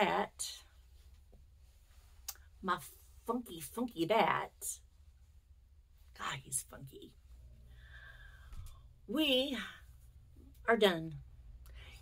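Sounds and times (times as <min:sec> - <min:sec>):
woman speaking: 0:00.0 - 0:00.7, 0:02.6 - 0:04.8, 0:06.1 - 0:07.2, 0:09.0 - 0:12.0.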